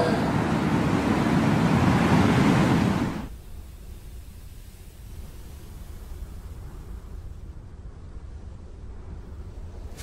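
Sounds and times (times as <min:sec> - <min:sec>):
small waves breaking on shore: 0:00.0 - 0:03.3.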